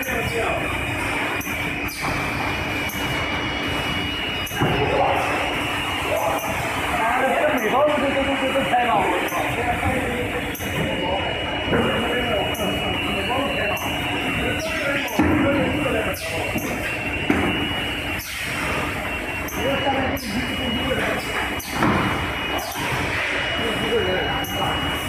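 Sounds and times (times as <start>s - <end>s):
people talking: 0.0s - 0.8s, 4.5s - 17.0s, 19.4s - 25.0s
machine hum with high whine: 0.0s - 25.0s.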